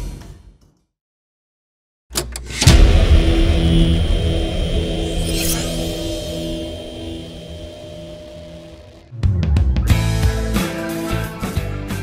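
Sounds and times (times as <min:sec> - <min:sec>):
impact hit: 0:02.5 - 0:09.1
steady low tones: 0:02.5 - 0:09.1
deep loud rumble: 0:02.6 - 0:09.1.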